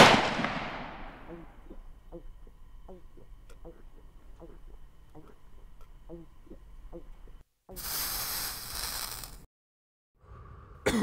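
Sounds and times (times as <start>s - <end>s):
loud rushing hiss: 7.8s - 9.4s.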